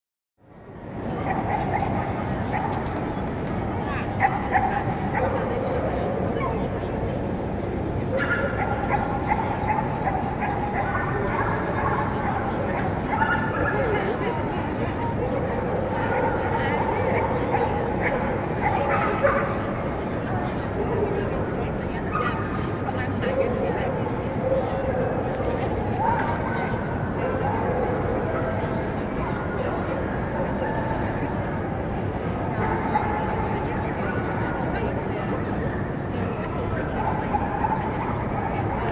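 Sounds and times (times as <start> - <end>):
hubbub of voices in a hall: 0.4 - 38.9
murmur of crowd chatter: 0.4 - 38.9.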